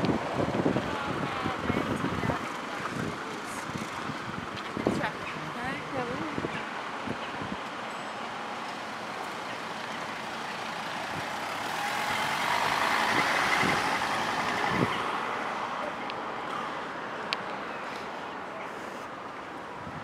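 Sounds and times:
road vehicle passing by: 0:00.0 - 0:19.9.

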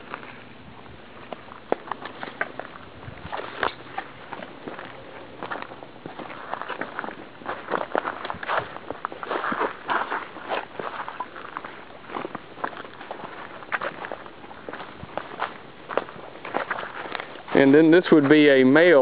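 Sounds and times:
footsteps on rock: 0:01.1 - 0:19.0.

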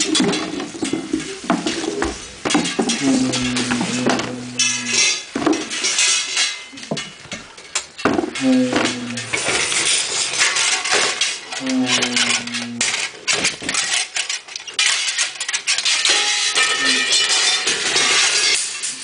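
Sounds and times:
clanking on metal objects: 0:00.0 - 0:19.0.

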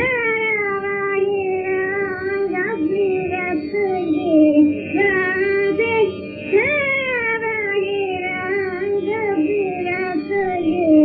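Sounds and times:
steady drone: 0:00.0 - 0:11.0
woman singing: 0:00.0 - 0:11.0.

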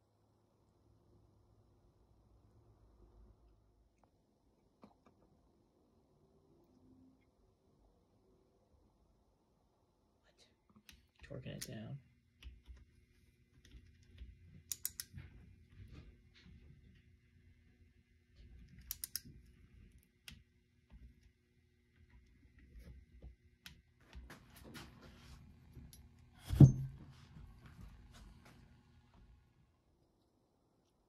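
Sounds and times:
socket ratchet clicking: 0:14.7 - 0:15.1, 0:18.9 - 0:19.2
heavy thump: 0:26.4 - 0:27.1.

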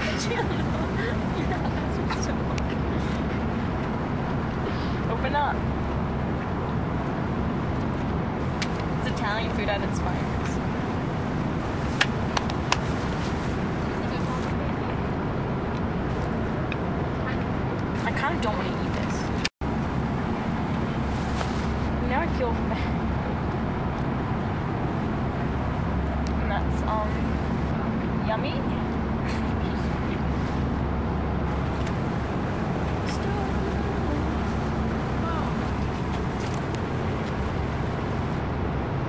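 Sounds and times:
airliner cabin roar: 0:00.0 - 0:39.0.

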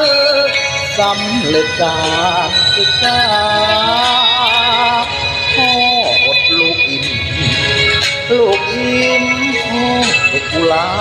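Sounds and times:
karaoke backing track: 0:00.0 - 0:11.0
person singing with vibrato: 0:00.0 - 0:11.0.

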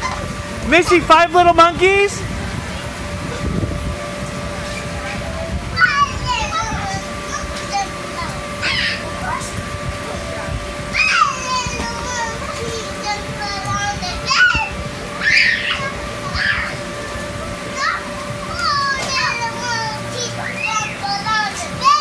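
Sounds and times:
steady low hum: 0:00.0 - 0:22.0
children squealing and calling: 0:04.6 - 0:09.6, 0:10.8 - 0:22.0.

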